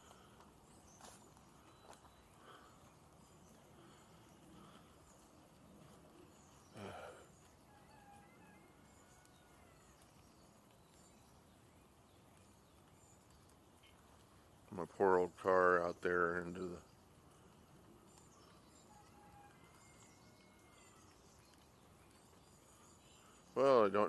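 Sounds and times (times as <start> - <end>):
faint bird chirps: 0.0 - 24.0.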